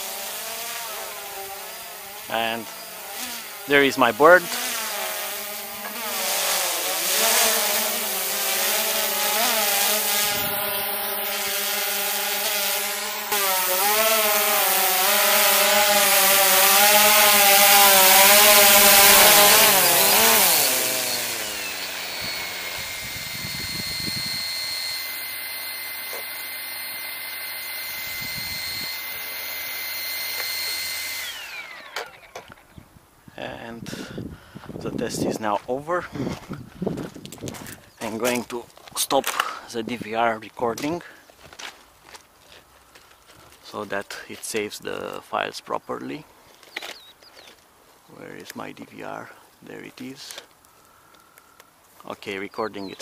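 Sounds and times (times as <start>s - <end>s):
drone propellers buzzing: 0.0s - 32.8s.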